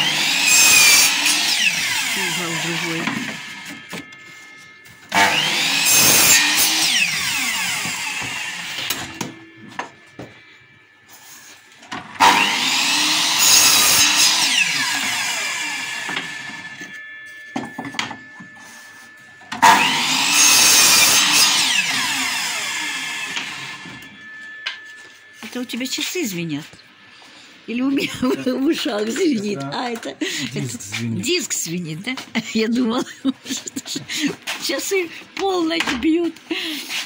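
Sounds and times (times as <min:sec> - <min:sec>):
saw motor spinning down: 0:00.0 - 0:04.1, 0:05.1 - 0:09.6, 0:12.1 - 0:17.1, 0:19.5 - 0:24.6
miter saw cutting wood: 0:00.0 - 0:10.3, 0:11.1 - 0:17.0, 0:17.9 - 0:24.5.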